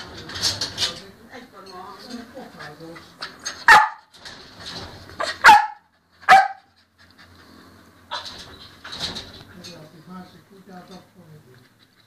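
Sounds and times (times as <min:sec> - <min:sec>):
dog barking: 0:03.7 - 0:04.1, 0:05.3 - 0:06.7.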